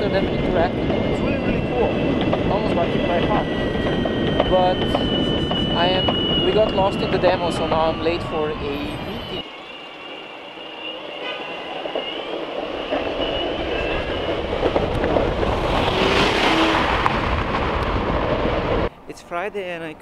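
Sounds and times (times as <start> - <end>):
road and wind noise: 0.0 - 20.0.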